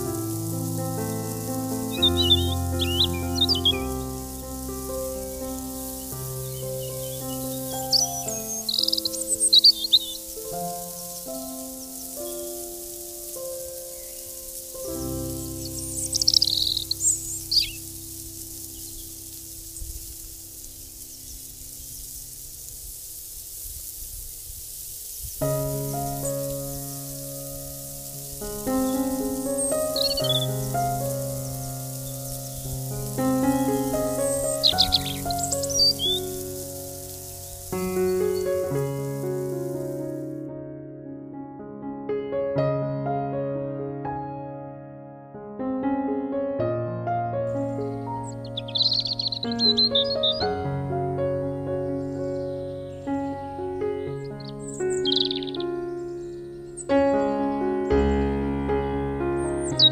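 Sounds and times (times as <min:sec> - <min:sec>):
instrumental background music: 0:00.0 - 0:18.9, 0:25.5 - 0:40.5
bird chirps: 0:00.0 - 0:39.8, 0:47.6 - 0:50.7, 0:51.4 - 0:57.6, 0:59.4 - 0:59.9.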